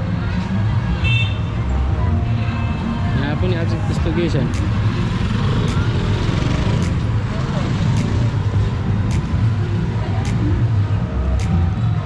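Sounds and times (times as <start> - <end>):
scooters and motorcycles passing: 2.7 - 10.2.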